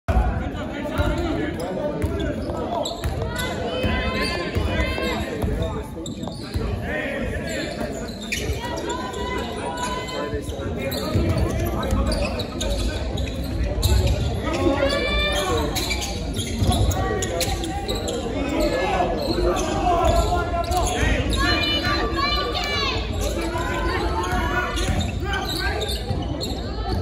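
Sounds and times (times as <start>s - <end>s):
voices echoing: 0.1s - 27.0s.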